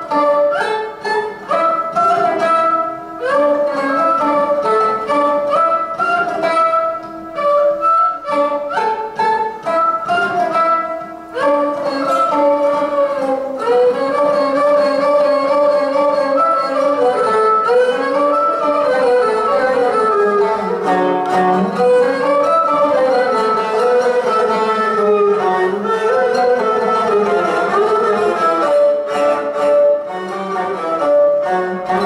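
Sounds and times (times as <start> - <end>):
bowed fiddle melody: 0.0 - 32.0
plucked lute: 0.0 - 32.0.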